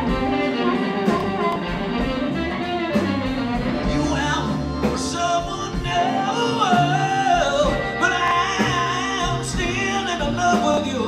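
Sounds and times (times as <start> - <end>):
bending lead guitar notes: 0.0 - 11.0
electric blues band playing: 0.0 - 11.0.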